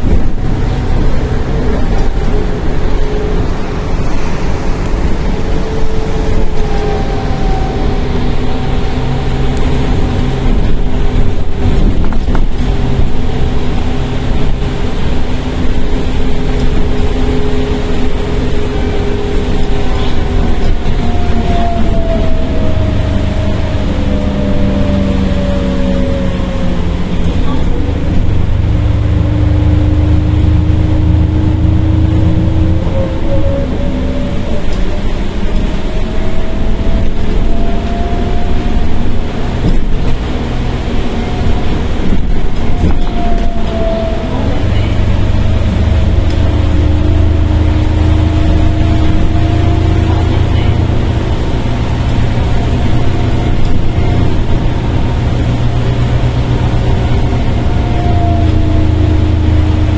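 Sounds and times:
bus engine whine: 0.0 - 59.9
road rumble: 0.0 - 59.9.

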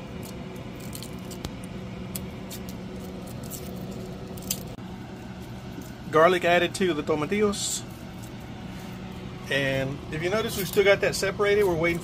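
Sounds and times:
garlic skins crinkling: 0.0 - 9.2
steady low hum: 0.0 - 12.0.

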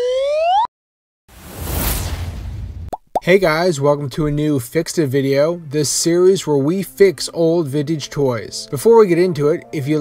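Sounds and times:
rising electronic beep: 0.0 - 0.7
rushing whoosh: 1.3 - 2.9.

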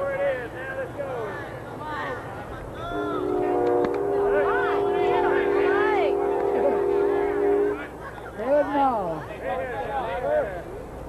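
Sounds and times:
spectators' voices: 0.0 - 11.0
horn chord blast: 3.0 - 8.0.

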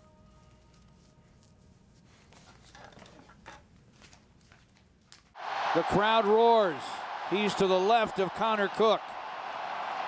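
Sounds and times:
faint musical tone: 0.0 - 1.9.

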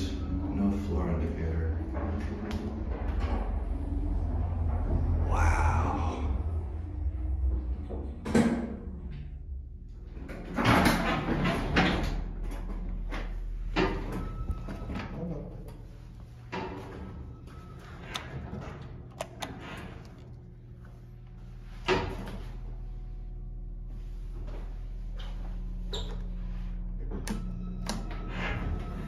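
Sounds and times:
elevator door sliding: 0.0 - 23.2, 24.2 - 29.0
elevator machinery hum: 0.0 - 29.0.

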